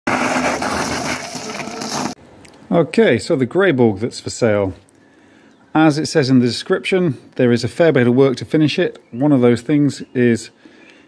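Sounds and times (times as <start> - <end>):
bike rattling: 0.1 - 2.2
tyres crunching over gravel: 0.1 - 2.2.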